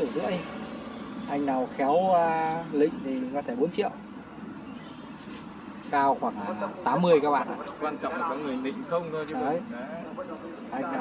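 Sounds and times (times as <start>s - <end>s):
man speaking: 5.9s - 11.0s.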